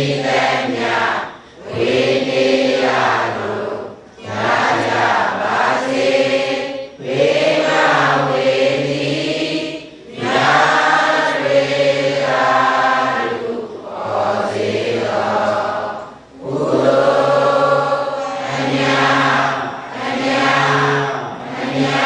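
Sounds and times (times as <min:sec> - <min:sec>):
congregation chanting in unison: 0:00.0 - 0:22.0.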